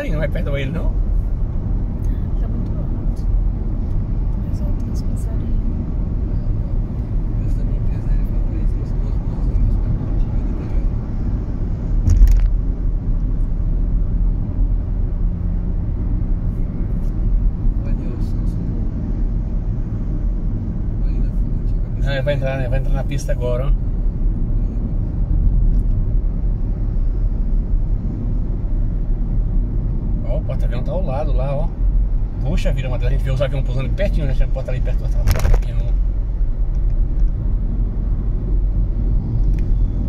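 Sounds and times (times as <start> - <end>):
car road rumble inside cabin: 0.0 - 40.0
short thump: 12.0 - 12.6.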